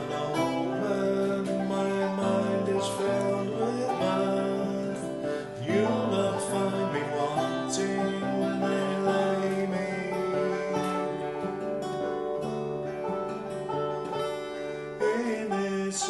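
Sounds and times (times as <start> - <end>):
acoustic guitar strumming: 0.0 - 16.0
banjo picking: 0.0 - 16.0.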